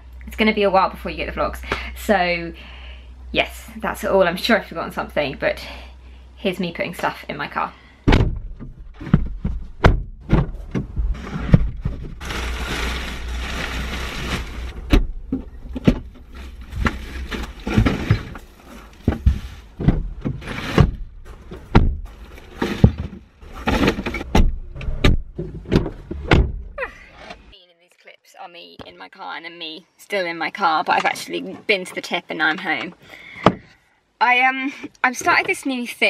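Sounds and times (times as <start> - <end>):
thuds against car body: 8.1 - 12.0, 21.7 - 22.1, 24.3 - 26.7
plastic bags rustling: 11.9 - 14.9.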